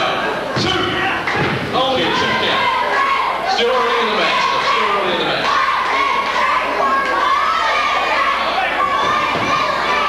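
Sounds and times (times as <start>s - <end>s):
shouting voices in a hall: 0.0s - 10.0s.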